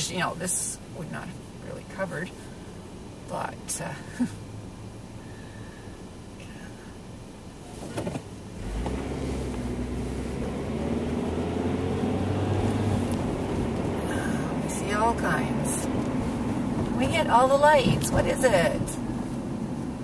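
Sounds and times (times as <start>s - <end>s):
car engine and road noise: 0.0s - 20.0s
car engine idling: 0.0s - 20.0s.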